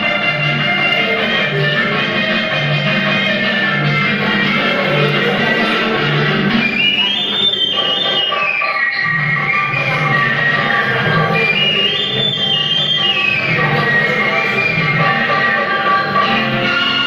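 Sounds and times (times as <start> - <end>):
instrumental film song backing track: 0.0 - 17.0.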